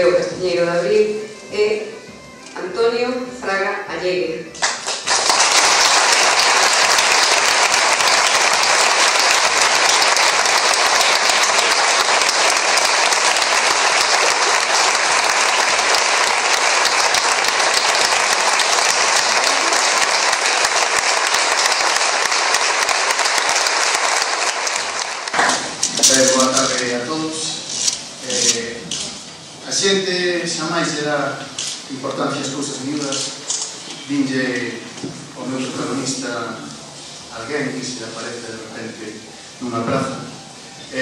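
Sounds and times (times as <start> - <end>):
audience applause: 4.6 - 26.8.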